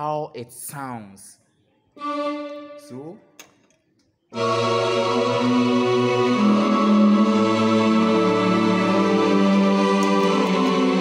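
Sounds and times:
keyboard playing held chords: 2.0s - 3.2s, 4.3s - 11.0s.

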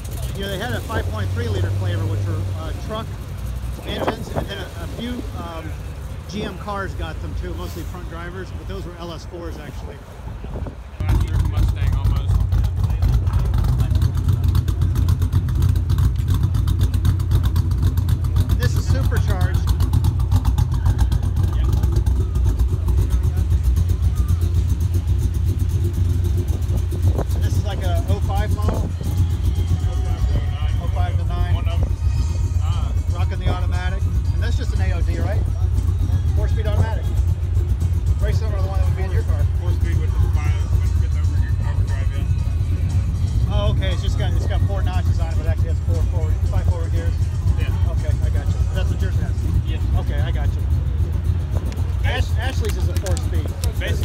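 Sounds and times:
car engine idling: 0.0s - 54.0s
voices: 0.0s - 54.0s.

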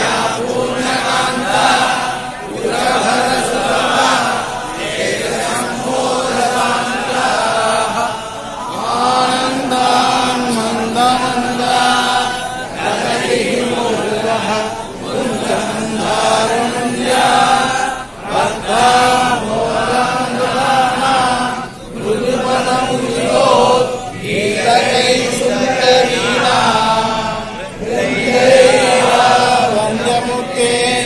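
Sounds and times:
men chanting in unison: 0.0s - 31.0s.

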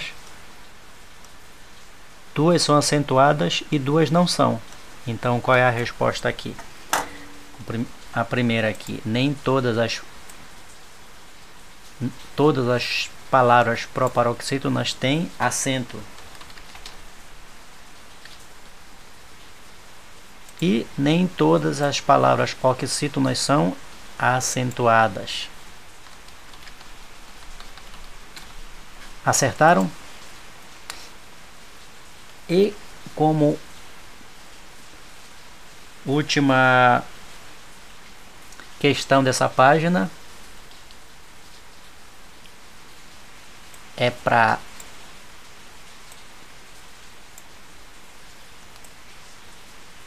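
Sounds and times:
background hiss: 0.0s - 50.0s
keyboard clicks: 16.2s - 17.0s, 26.0s - 28.5s.

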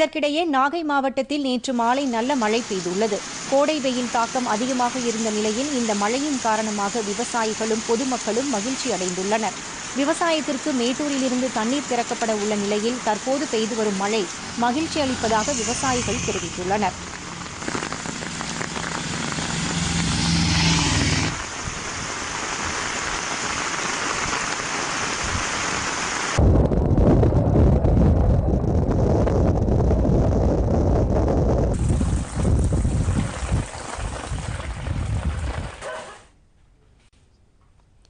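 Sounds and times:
rain hissing on a road: 1.9s - 26.4s, 31.8s - 35.9s
wind rumble on microphone: 25.2s - 35.9s.

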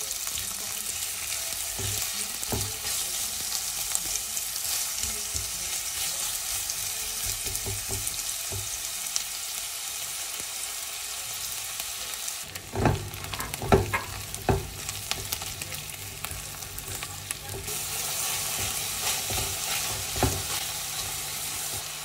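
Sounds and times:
onion sizzling in hot oil: 0.0s - 22.0s
spatula knocking and scraping pot: 12.6s - 15.5s, 16.3s - 21.9s.

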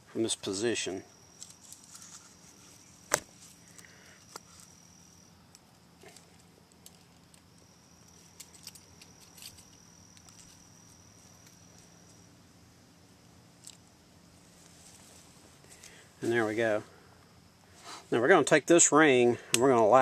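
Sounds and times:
high insect trill: 0.0s - 20.0s.

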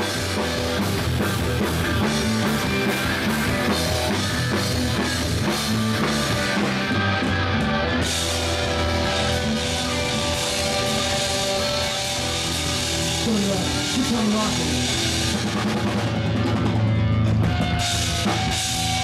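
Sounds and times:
bass guitar: 0.0s - 19.0s
drum kit: 0.0s - 19.0s
electric guitars: 0.0s - 19.0s.

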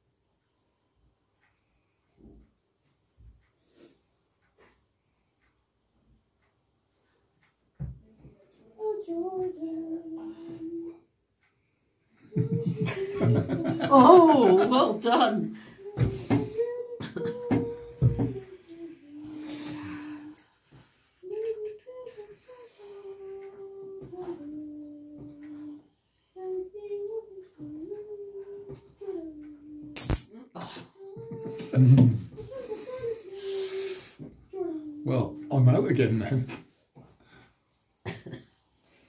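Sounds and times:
person humming a slow tune: 8.1s - 11.1s, 12.1s - 20.5s, 21.2s - 30.0s, 30.6s - 35.7s
sharp click: 30.0s - 30.3s.

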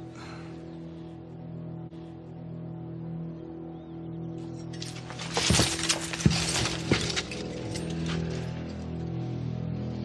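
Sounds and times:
low music drone: 0.0s - 10.0s
metallic clanking and rattling: 4.8s - 8.6s.

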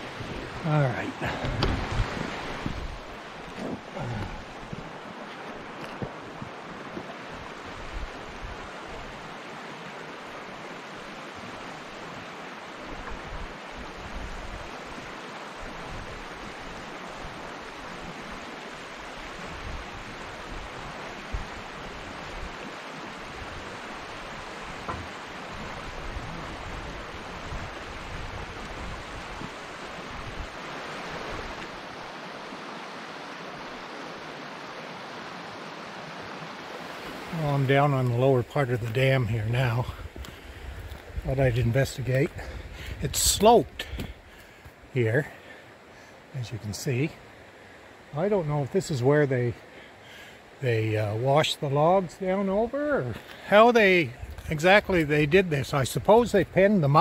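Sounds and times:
wind buffeting microphone: 0.0s - 9.3s, 19.2s - 32.0s, 38.7s - 44.3s
river water rushing over rocks: 0.0s - 55.8s.

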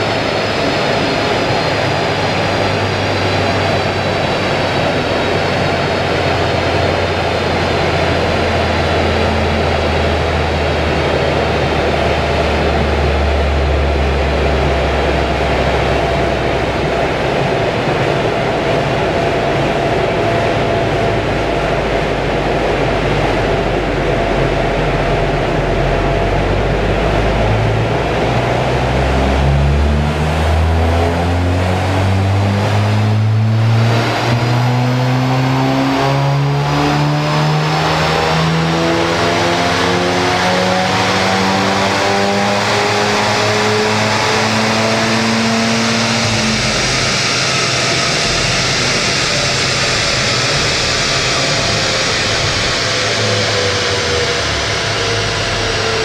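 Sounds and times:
car engine revving at full load: 0.0s - 56.0s.

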